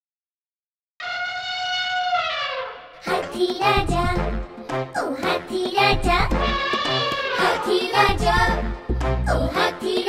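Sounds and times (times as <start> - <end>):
cartoon elephant trumpet call: 1.0 - 3.1, 6.4 - 8.0.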